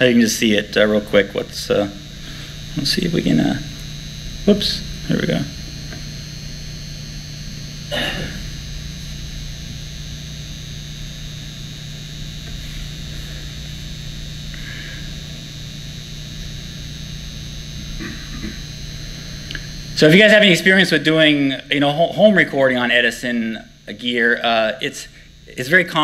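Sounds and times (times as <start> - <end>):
electrical hum: 0.0 - 26.0
high-pitched whine: 0.0 - 26.0.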